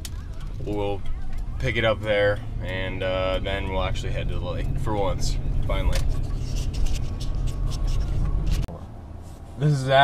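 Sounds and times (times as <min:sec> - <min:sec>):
low hum: 0:00.0 - 0:09.6
road and engine rumble inside vehicle: 0:00.0 - 0:10.0.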